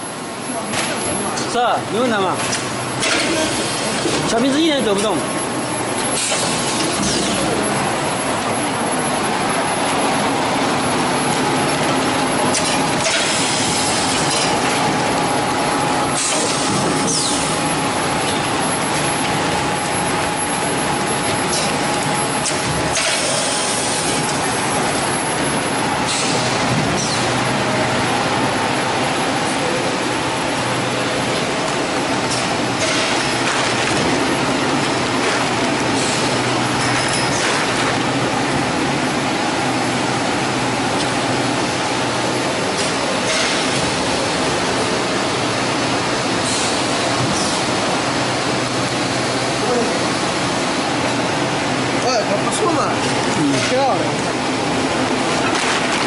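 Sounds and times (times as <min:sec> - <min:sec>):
production line machinery running: 0:00.0 - 0:56.0.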